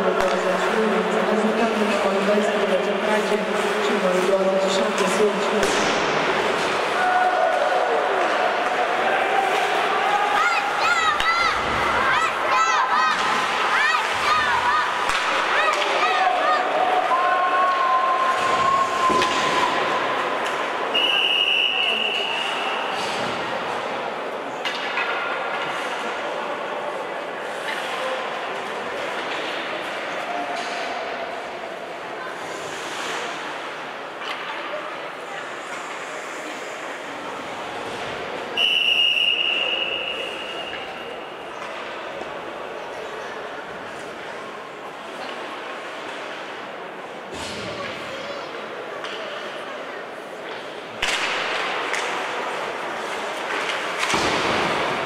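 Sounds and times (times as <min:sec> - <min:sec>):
hockey sticks and puck clacking: 0:00.1 - 0:22.3, 0:24.4 - 0:26.4, 0:27.5 - 0:31.5, 0:37.8 - 0:42.6, 0:47.3 - 0:49.6, 0:50.3 - 0:55.0
referee's whistle blast: 0:38.6 - 0:41.0.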